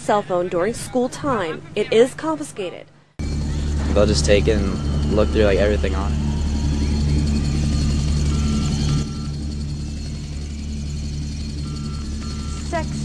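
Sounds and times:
high electronic beeps: 3.2s - 9.8s, 11.4s - 13.0s
low drone: 3.2s - 13.0s.

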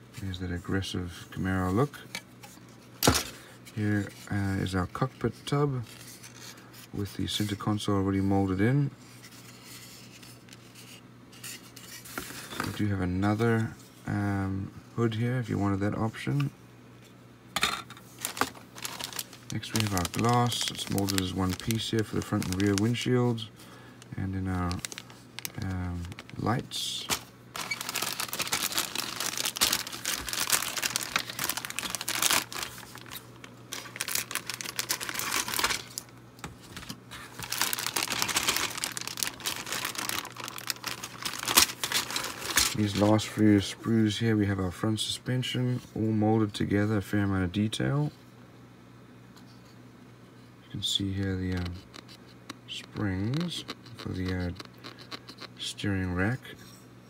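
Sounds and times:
low steady hum: 0.0s - 57.0s
plastic bag crinkling: 18.1s - 43.3s.

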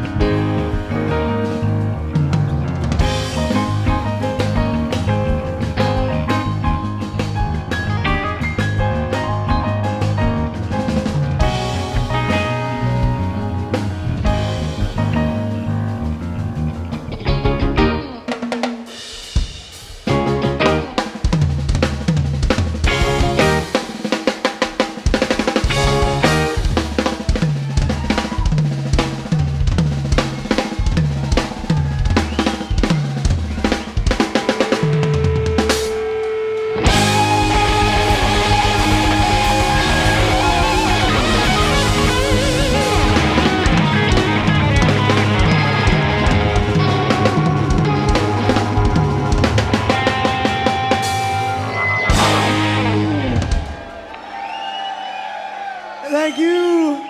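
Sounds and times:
rock drum kit playing: 0.0s - 54.4s
rock band with electric guitar: 0.0s - 57.0s
crowd cheering: 25.6s - 57.0s
loud whoop: 27.2s - 28.6s, 36.8s - 42.1s, 53.2s - 57.0s.

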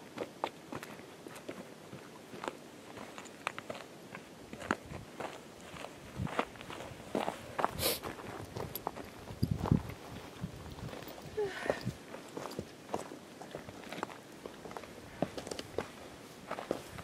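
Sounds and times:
footsteps on gravel: 0.1s - 17.0s.

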